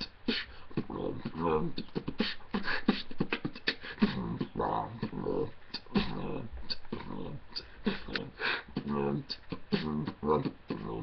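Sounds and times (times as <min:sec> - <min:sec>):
man beatboxing: 0:00.0 - 0:11.0.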